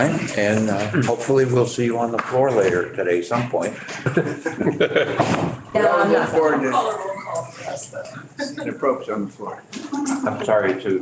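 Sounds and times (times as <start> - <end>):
people laughing: 3.8 - 6.7, 9.8 - 10.6.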